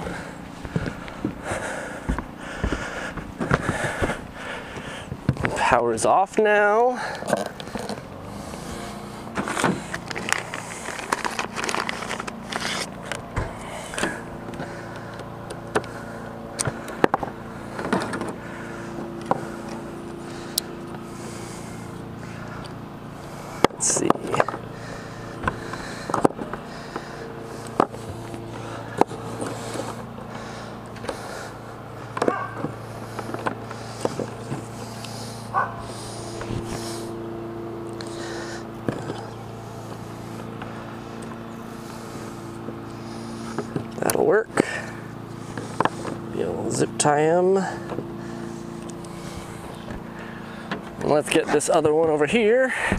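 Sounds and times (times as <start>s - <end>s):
steady low hum: 0.0s - 52.9s
cable rustling and scraping: 7.0s - 16.0s, 25.3s - 37.2s.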